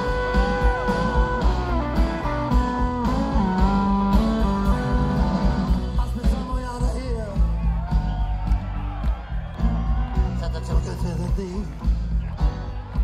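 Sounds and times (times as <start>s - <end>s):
electric guitar bent notes: 0.0s - 6.0s
live rock band playing: 0.0s - 13.0s.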